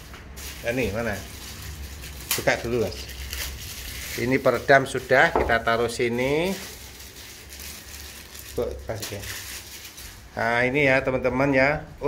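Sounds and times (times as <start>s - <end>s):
rustling and handling noise: 0.0s - 10.4s.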